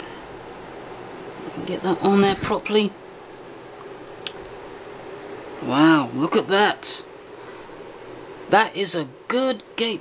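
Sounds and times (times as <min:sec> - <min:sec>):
faint room hiss: 0:00.0 - 0:10.0.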